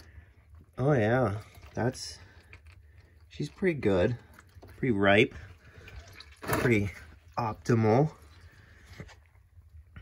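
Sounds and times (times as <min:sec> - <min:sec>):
oil trickling into drain pan: 0:00.0 - 0:09.7.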